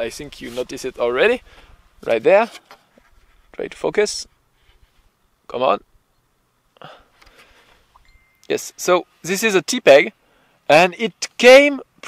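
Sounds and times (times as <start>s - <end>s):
man breathy vocal sound: 6.8s - 7.2s.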